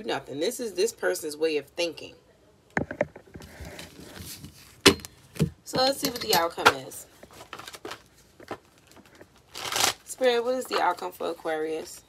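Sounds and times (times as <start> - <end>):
cards rustling: 6.6 - 12.0.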